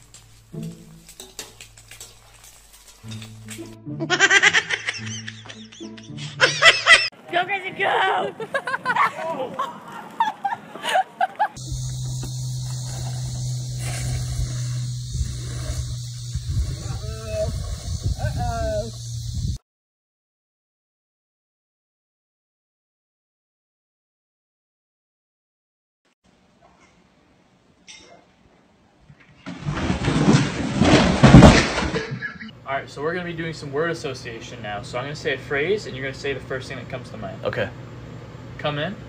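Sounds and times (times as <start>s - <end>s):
person laughing: 4.0s - 7.1s, 8.4s - 11.6s, 32.0s - 32.5s
golf cart engine humming: 11.6s - 19.2s.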